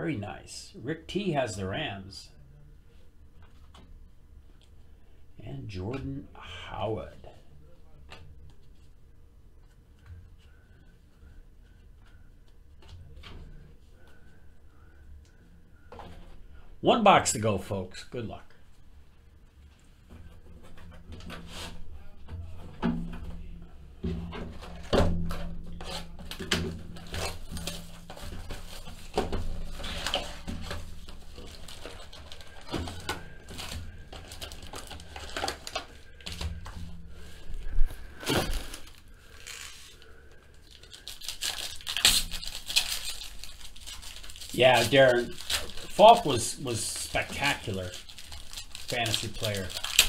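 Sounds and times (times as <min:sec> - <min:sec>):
foil pack crinkling: 0:24.6 - 0:50.0.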